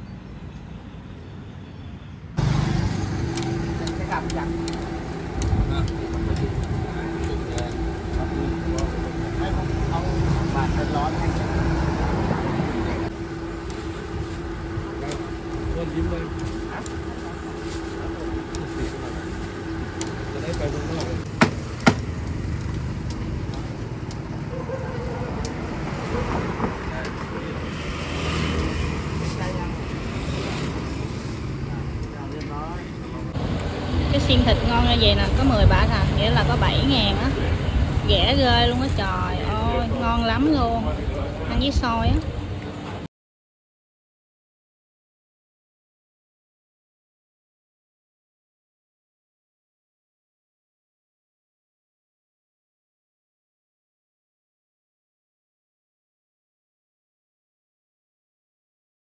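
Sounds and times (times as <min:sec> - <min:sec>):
steady low rumble: 0:02.4 - 0:21.3
steady hum: 0:02.4 - 0:21.9.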